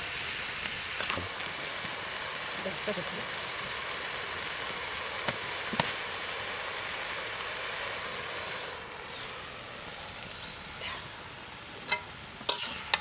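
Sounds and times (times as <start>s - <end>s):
leaves sizzling in oil: 0.0s - 13.0s
metal spatula knocking wok: 11.9s - 13.0s.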